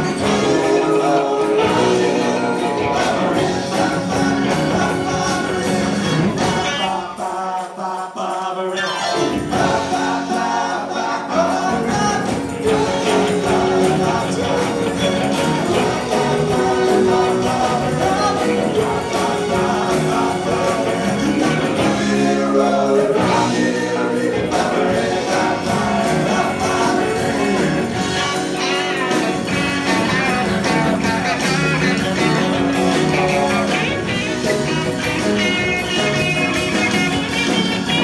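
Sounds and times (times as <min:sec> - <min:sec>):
live rock band playing: 0:00.0 - 0:07.2, 0:08.8 - 0:38.0
lead and backing vocals: 0:00.0 - 0:38.0
people singing: 0:00.0 - 0:38.0.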